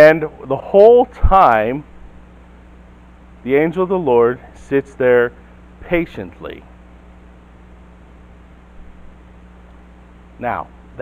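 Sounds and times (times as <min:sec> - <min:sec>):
low constant hum: 0:00.0 - 0:11.0.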